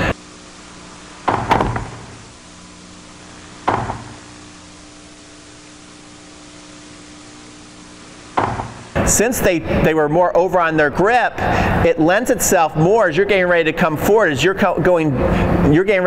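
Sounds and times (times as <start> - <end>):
recording hiss and hum: 0.0 - 16.0.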